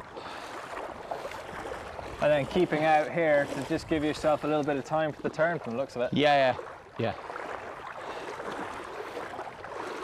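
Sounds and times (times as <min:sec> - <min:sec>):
water sloshing around boots: 0:00.0 - 0:10.0.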